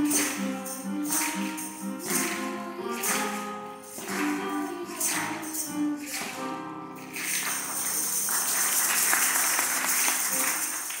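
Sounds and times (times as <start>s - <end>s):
maracas rattling: 0.0s - 11.0s.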